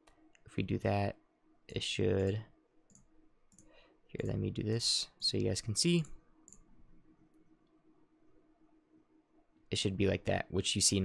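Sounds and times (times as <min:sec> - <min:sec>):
low room hum: 0:00.0 - 0:11.0
computer mouse clicks: 0:02.2 - 0:04.4, 0:06.0 - 0:06.7.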